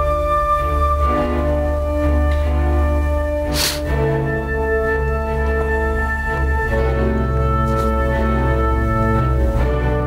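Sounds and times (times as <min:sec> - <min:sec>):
orchestral music from laptop: 0:00.0 - 0:10.0.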